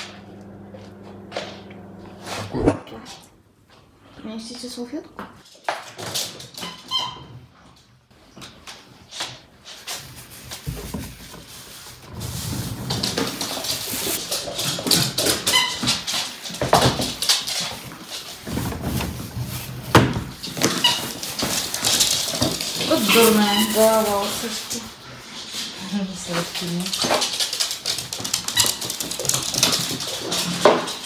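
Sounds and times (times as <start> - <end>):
paws scrabbling on hard floor: 8.1 - 31.0
dogs playing noises: 11.8 - 31.0.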